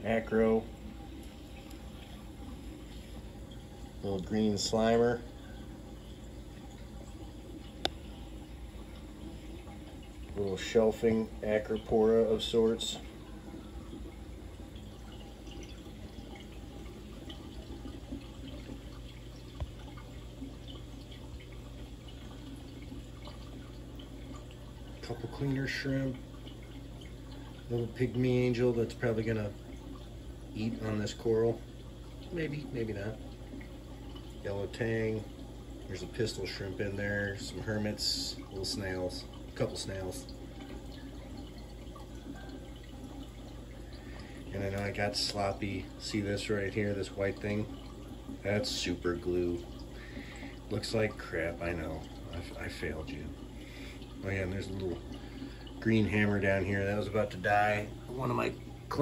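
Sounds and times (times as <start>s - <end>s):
low steady hum: 0.0s - 59.0s
water trickling and dripping: 0.0s - 59.0s.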